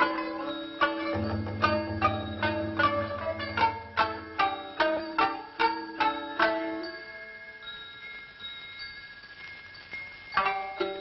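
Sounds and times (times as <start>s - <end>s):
film soundtrack hiss: 0.0s - 11.0s
thin high ringing tones: 0.0s - 11.0s.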